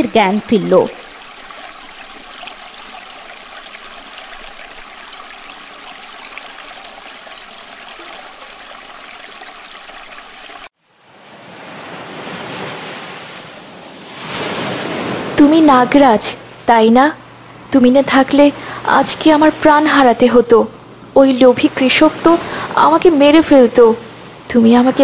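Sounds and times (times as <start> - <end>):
rushing water: 0.0 - 15.4
sea waves washing in: 10.5 - 16.7, 18.5 - 25.0.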